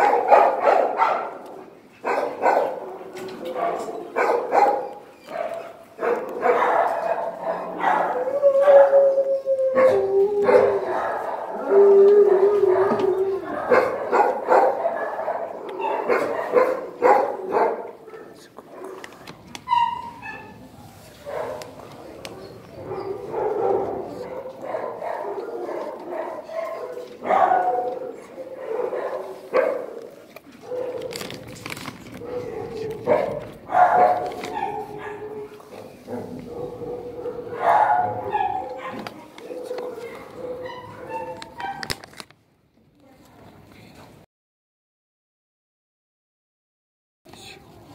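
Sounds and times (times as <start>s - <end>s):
dogs barking: 0.0s - 9.1s, 9.8s - 19.1s, 19.7s - 31.5s, 32.2s - 42.0s.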